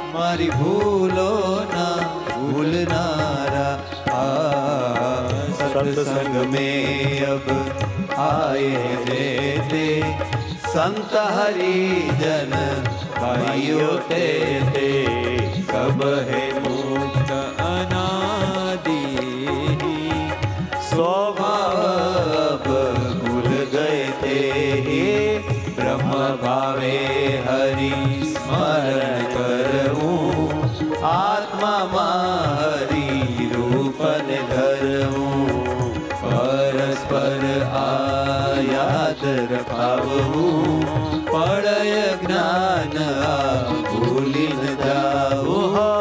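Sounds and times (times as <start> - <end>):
person singing devotional melody: 0.0 - 46.0.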